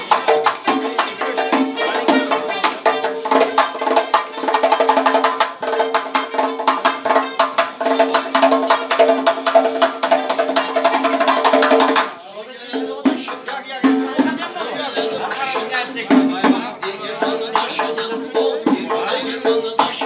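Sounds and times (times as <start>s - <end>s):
frame drum with jingles: 0.0s - 20.0s.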